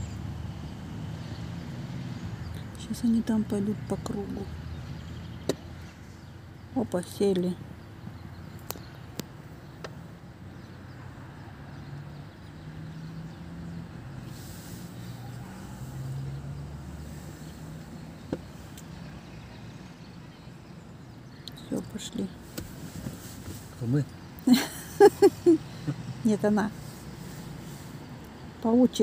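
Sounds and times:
street ambience: 0.0 - 29.0
vehicle engine humming low: 0.0 - 29.0.

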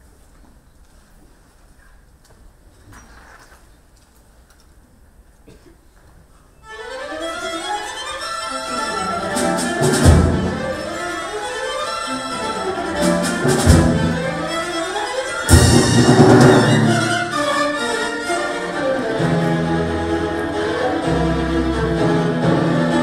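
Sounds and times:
bowed strings: 6.6 - 23.0
drum kit: 9.3 - 10.9, 12.9 - 14.6, 15.5 - 17.3.

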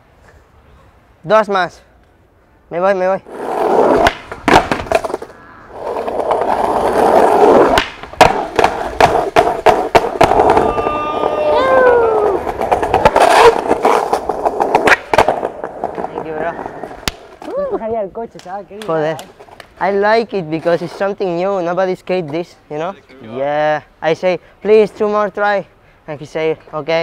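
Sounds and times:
skateboard rolling on stone: 3.2 - 17.5
skateboard clacking on landing: 3.9 - 11.3, 12.1 - 17.5
falling tone: 10.2 - 17.8.

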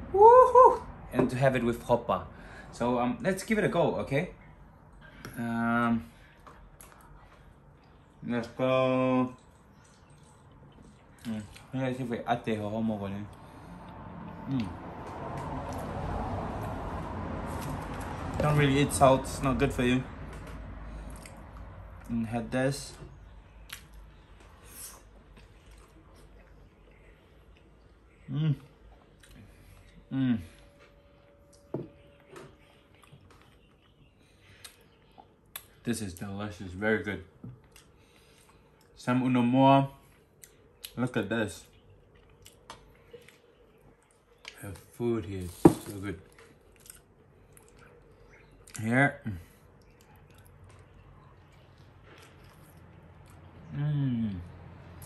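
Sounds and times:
person chewing: 21.0 - 22.1, 23.6 - 30.0, 32.6 - 35.8, 41.7 - 44.6, 46.3 - 48.8, 49.4 - 53.7.

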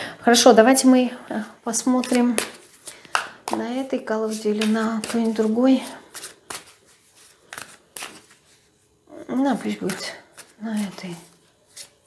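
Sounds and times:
cards being shuffled: 1.9 - 8.7, 9.6 - 12.0.

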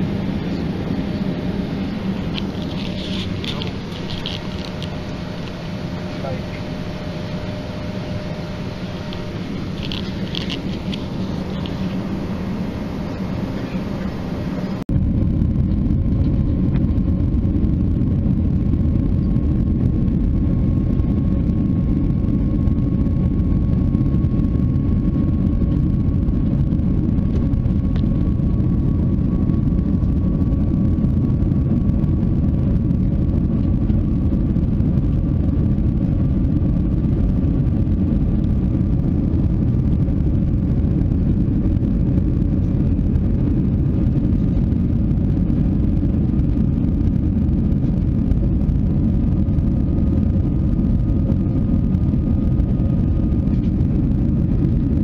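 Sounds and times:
faint steady whine: 0.0 - 55.0
jet engines rumbling in cabin: 0.0 - 55.0.

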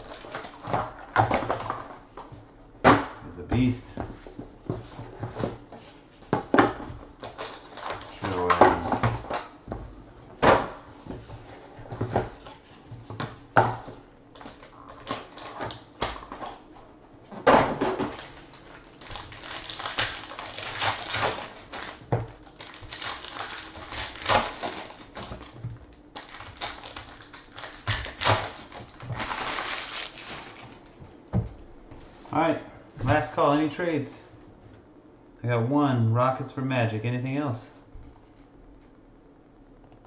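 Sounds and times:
foil packs ripping and crinkling: 0.0 - 0.8, 7.2 - 9.3, 14.3 - 16.4, 18.0 - 31.0.

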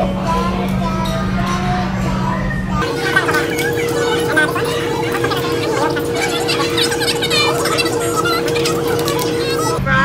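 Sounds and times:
steady held notes: 2.8 - 9.8.

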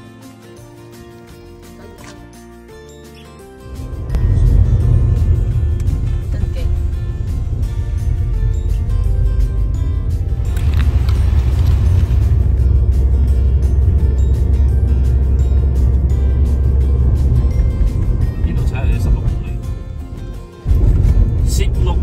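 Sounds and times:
background music: 0.0 - 22.0
car driving rumble: 3.4 - 22.0.

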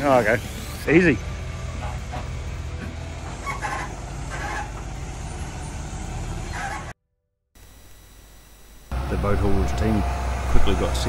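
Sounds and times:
outdoor background noise: 0.0 - 7.0
truck diesel engine rumbling: 0.0 - 7.0, 8.9 - 11.0.

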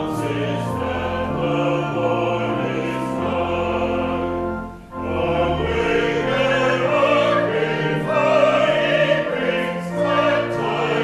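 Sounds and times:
choir and congregation singing hymn: 0.0 - 11.0
organ accompaniment: 0.0 - 11.0.

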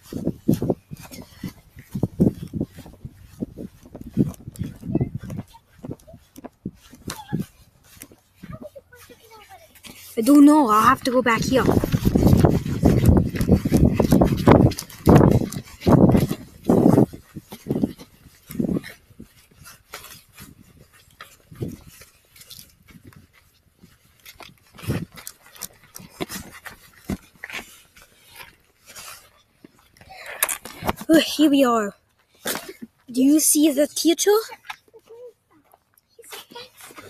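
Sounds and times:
clothing rubbing on microphone: 0.0 - 24.0.

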